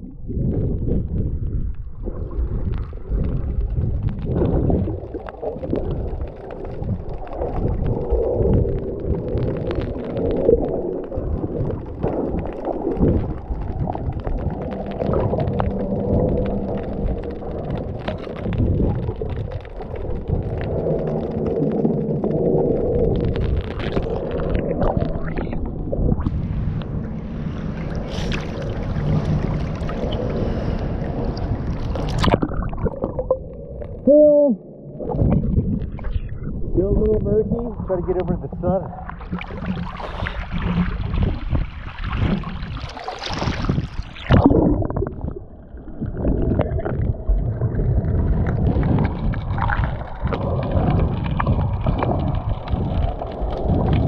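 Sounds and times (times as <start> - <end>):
clicks and gurgles: 0.0 - 54.0
underwater water rumble: 0.0 - 54.0.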